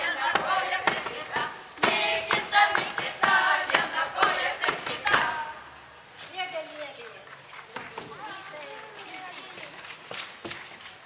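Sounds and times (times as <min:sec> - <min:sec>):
sharp rhythmic knocks: 0:00.0 - 0:05.4
group singing folk song: 0:00.0 - 0:06.0.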